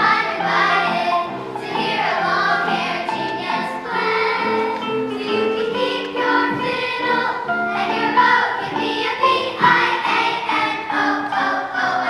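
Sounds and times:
children's choir singing: 0.0s - 12.0s.

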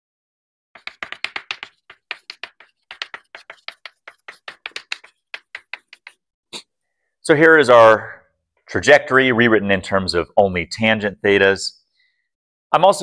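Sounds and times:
chalk tapping on blackboard: 0.8s - 6.2s.

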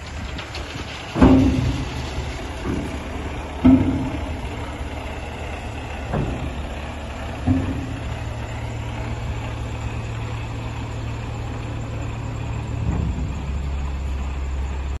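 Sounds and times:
lorry diesel engine running: 0.0s - 15.0s
tipper body thump: 7.4s - 8.2s.

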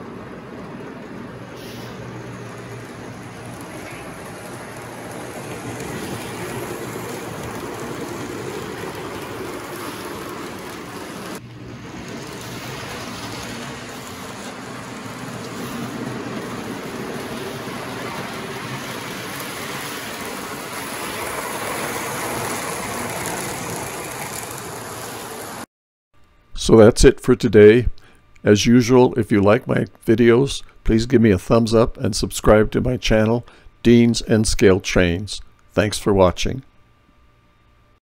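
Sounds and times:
model train running on rails: 0.0s - 25.7s.

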